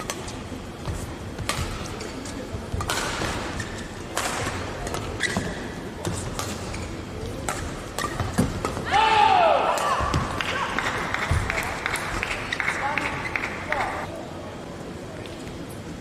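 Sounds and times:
racket striking shuttlecock: 1.4 - 1.9, 2.7 - 6.7, 7.4 - 8.9
loud falling shout: 8.9 - 10.1
crowd clapping: 10.4 - 14.0.

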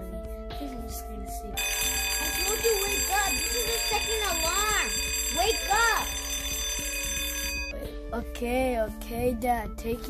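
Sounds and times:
electronic alarm ringing: 1.6 - 7.7.

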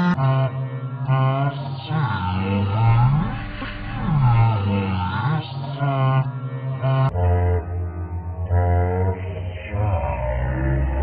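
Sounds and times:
person chanting low held notes: 0.0 - 11.0.

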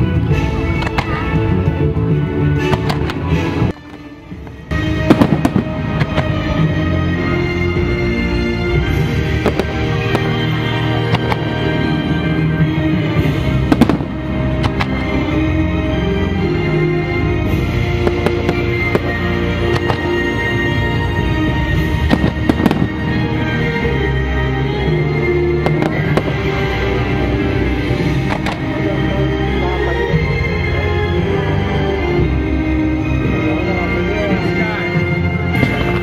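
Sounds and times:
fireworks display music: 0.0 - 36.0
firework cracks: 0.7 - 1.4, 2.7 - 6.6, 9.4 - 11.7, 13.6 - 15.2, 17.9 - 20.7, 21.9 - 23.1, 28.2 - 28.8.

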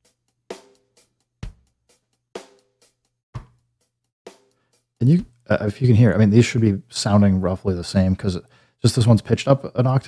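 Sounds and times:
drum loop with kick: 1.4 - 1.8.

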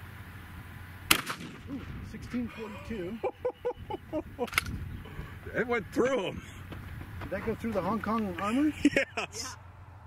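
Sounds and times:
woman laughing: 2.5 - 4.6, 8.7 - 9.6
sharp click: 4.4 - 4.8.

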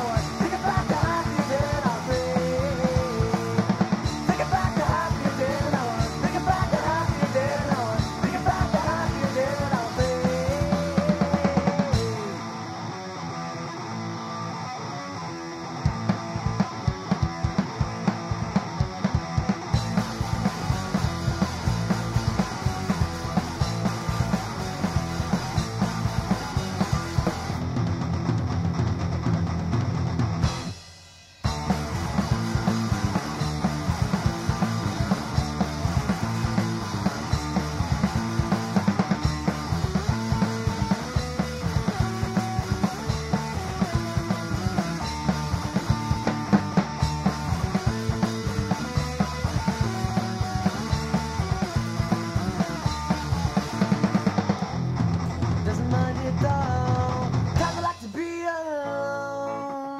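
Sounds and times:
punk rock band playing: 0.0 - 59.9.

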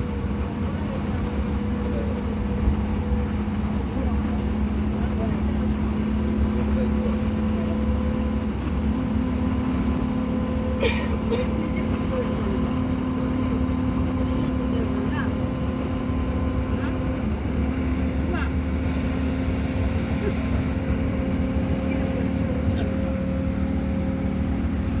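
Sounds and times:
road and engine noise inside vehicle: 0.0 - 25.0.

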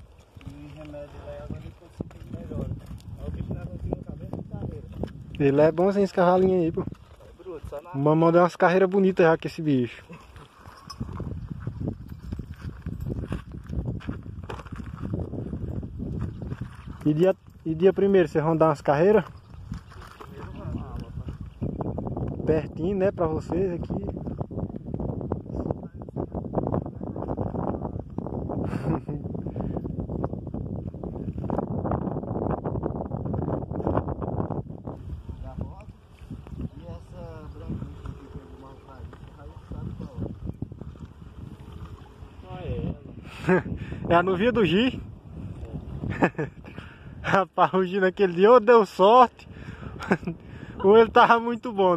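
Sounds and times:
horse hooves on gravel: 0.0 - 22.4, 35.8 - 42.5
wind buffeting microphone: 0.0 - 51.9.

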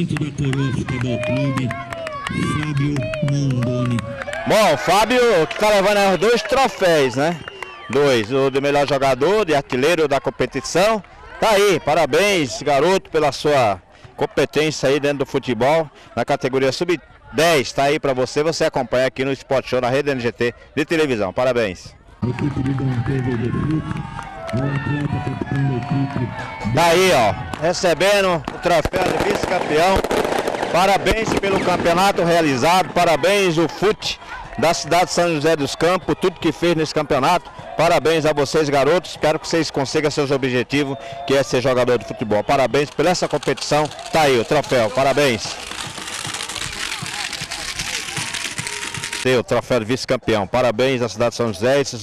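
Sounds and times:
crowd clapping: 0.0 - 8.7, 22.2 - 32.8, 42.4 - 49.3
man talking: 0.0 - 23.9, 24.5 - 30.1, 30.7 - 45.6, 49.2 - 52.0.

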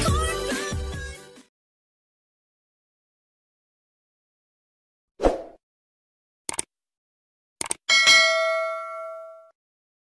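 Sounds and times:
quick clicks: 6.5 - 6.7, 7.6 - 7.8
bright bell ding: 7.9 - 9.5.

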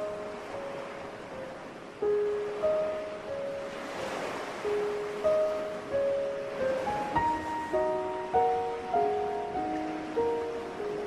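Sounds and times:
ocean surf washing in: 0.0 - 11.0
slow soft music: 0.0 - 11.0.

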